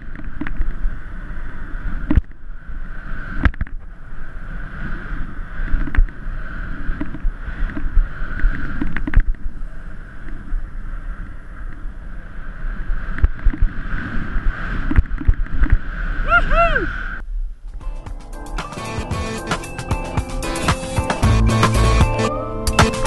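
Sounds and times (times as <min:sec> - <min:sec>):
wind rushing over microphone: 0:00.0 - 0:17.8.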